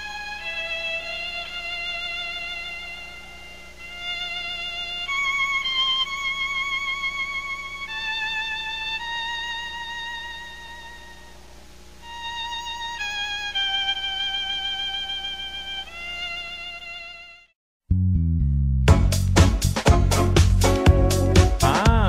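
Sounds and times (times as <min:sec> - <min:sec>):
solo violin melody: 0:00.0 - 0:11.4, 0:12.0 - 0:17.6.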